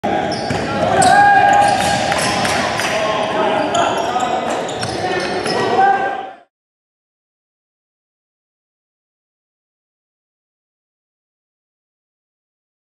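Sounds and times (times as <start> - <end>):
players' voices: 0.0 - 6.5
sneakers squeaking: 0.1 - 6.2.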